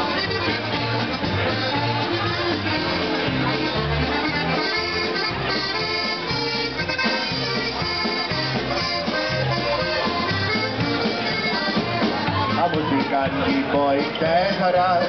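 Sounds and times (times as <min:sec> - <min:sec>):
polka band playing: 0:00.0 - 0:15.0.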